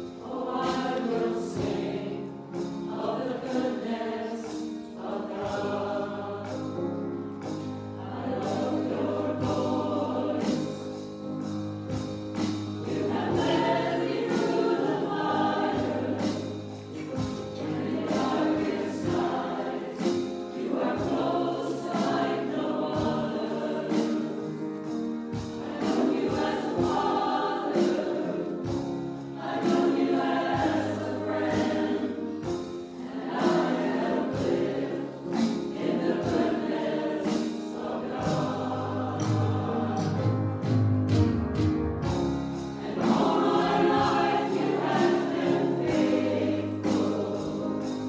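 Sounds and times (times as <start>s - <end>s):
choir singing: 0.0s - 41.1s, 42.0s - 48.0s.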